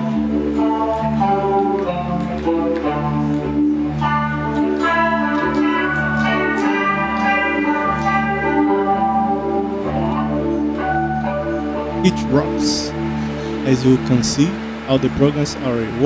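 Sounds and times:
electric guitar melodic line: 0.0 - 16.0
sustained low backing notes: 0.0 - 16.0.

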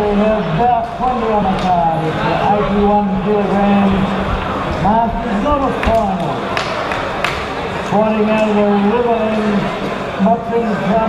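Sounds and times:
voices in reverberant hall: 0.0 - 11.0.

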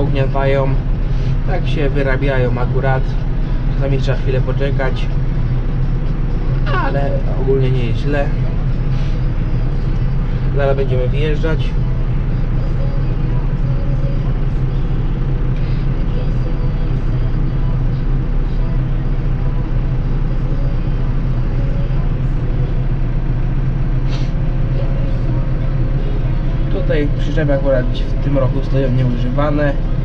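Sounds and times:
tractor diesel engine drone: 0.0 - 30.0.

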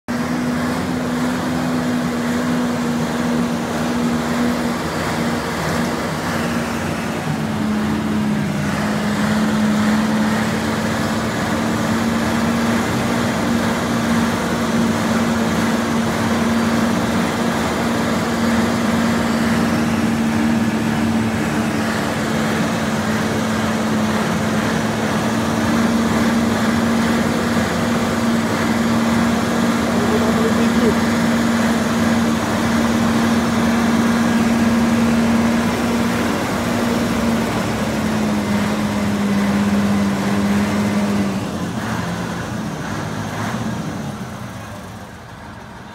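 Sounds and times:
loud engine drone: 0.0 - 45.9
continuous rushing noise: 0.1 - 45.9.

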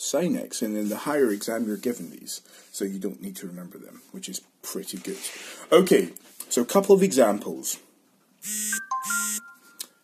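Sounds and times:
short electronic buzzes: 8.4 - 9.7
clear ringing tones: 8.4 - 10.0.

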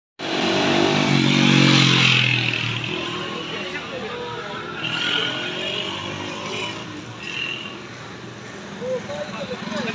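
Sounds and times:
street noise: 0.2 - 9.9.

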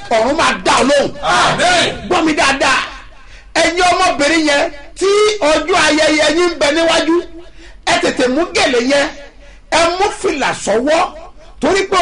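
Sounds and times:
man shouting excitedly: 0.7 - 3.0.

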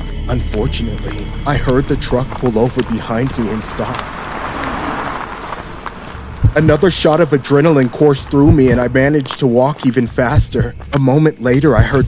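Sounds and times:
low rumble: 0.0 - 9.3
truck pulling over and stopping: 0.0 - 12.0.

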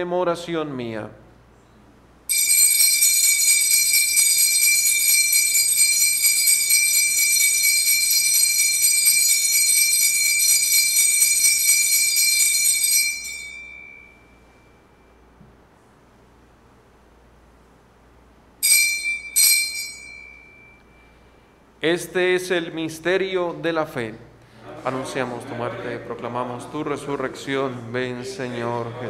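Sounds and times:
altar bells ringing: 2.3 - 15.4, 18.6 - 21.7.

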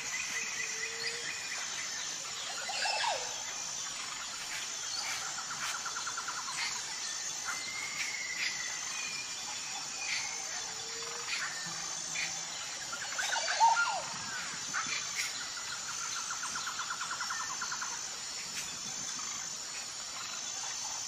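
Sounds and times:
high insect drone: 0.0 - 21.0
birds chirping and whistling: 10.0 - 15.4.

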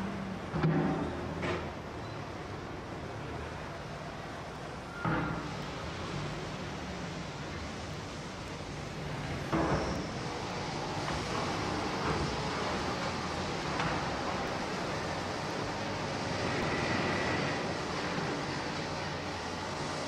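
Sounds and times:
faint high whine: 2.0 - 20.0.

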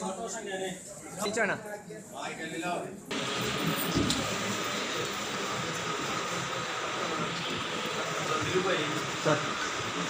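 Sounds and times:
room background noise: 0.0 - 10.0
faint steady whine: 3.1 - 10.0.

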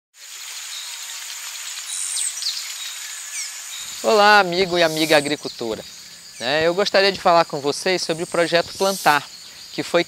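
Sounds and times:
high insect drone: 0.2 - 10.0.

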